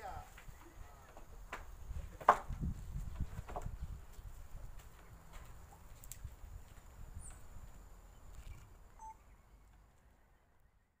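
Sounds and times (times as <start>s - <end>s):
short high chirp: 9.0s - 9.2s.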